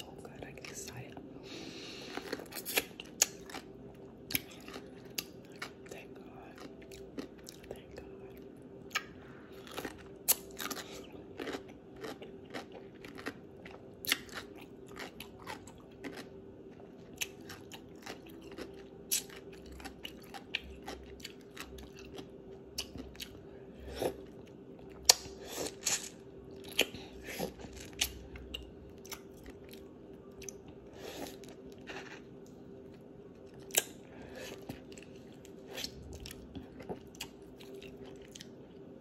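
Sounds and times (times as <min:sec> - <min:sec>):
faint steady hum: 0:00.0 - 0:39.0
crunchy pickle chewing: 0:02.0 - 0:38.6.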